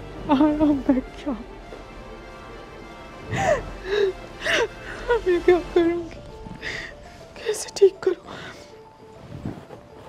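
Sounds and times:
soft background music: 0.0 - 10.0
woman sobbing: 3.2 - 8.7.

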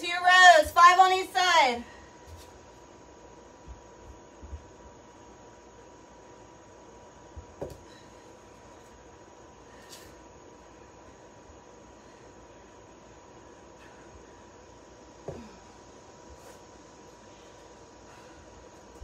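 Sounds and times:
faint hiss: 0.0 - 19.0.

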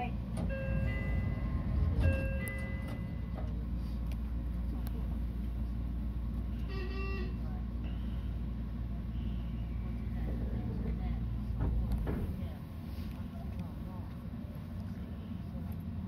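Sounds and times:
electric train rumble and hum: 0.0 - 16.0.

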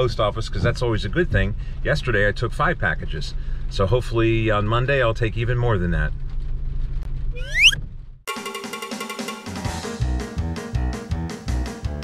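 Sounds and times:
vehicle cabin rumble: 0.0 - 8.3
rising whistle sound effect: 7.3 - 7.8
instrumental music: 7.4 - 12.0.

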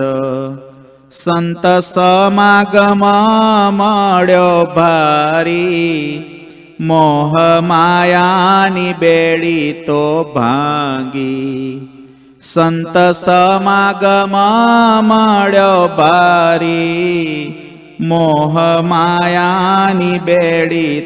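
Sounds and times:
man chanting: 0.0 - 21.0.

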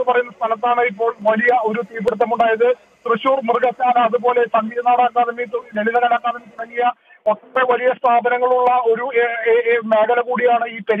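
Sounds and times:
man speaking over telephone: 0.0 - 11.0.

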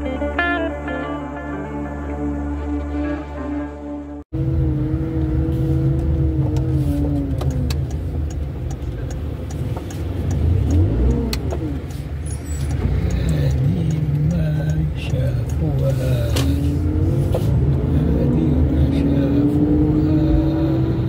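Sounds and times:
road traffic rumble: 0.0 - 21.0
car engine rising and falling: 1.7 - 21.0.

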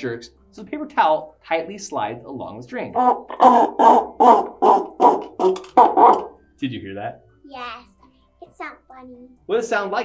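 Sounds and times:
cup clucking like chicken: 3.0 - 6.4.

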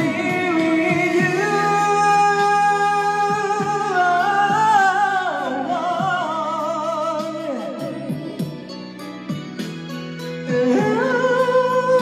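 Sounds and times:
ballad backing track: 0.0 - 12.0.

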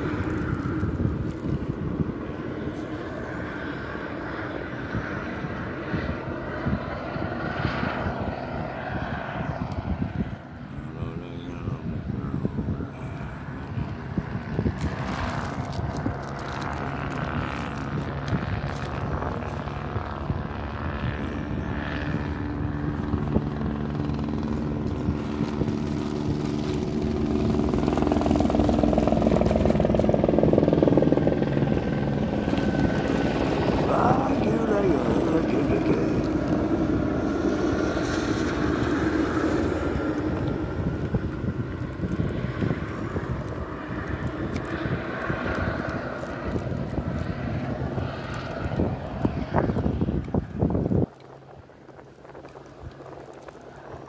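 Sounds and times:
helicopter engine and rotor drone: 0.0 - 54.0.

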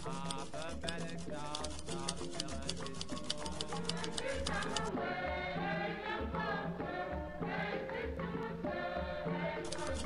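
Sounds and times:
ticking percussion: 0.0 - 10.0.

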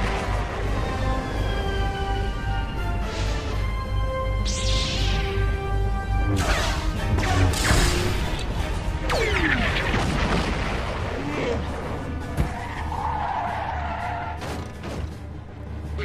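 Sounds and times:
music: 0.0 - 16.0.

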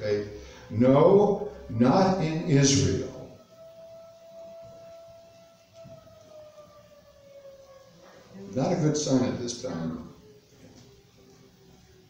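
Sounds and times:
mechanical siren wailing: 0.0 - 12.0.

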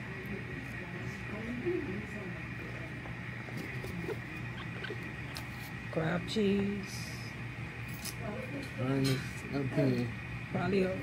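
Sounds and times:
steady hum: 0.0 - 11.0.

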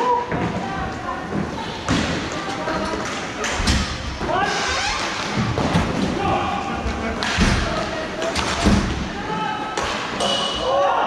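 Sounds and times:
echoing hall noise: 0.0 - 11.0.

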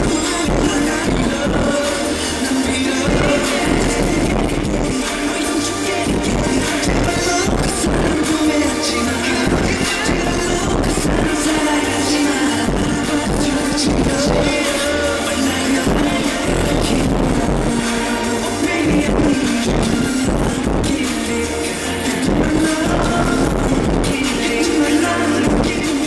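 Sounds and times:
live pop song with heavy bass: 0.0 - 26.0.

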